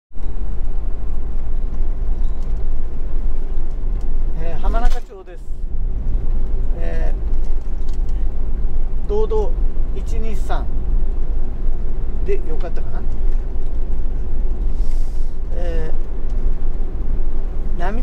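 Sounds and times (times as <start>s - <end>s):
van road and engine rumble: 0.1s - 18.0s.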